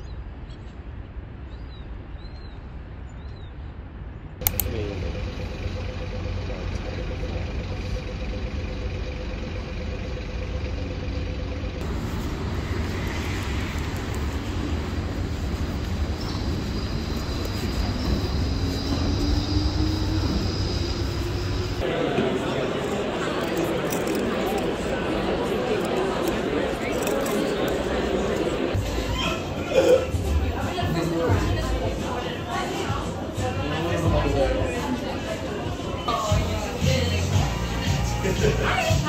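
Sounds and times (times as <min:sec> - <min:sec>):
low rumble of city traffic: 0:00.0 - 0:39.0
sharp click: 0:04.4 - 0:04.8.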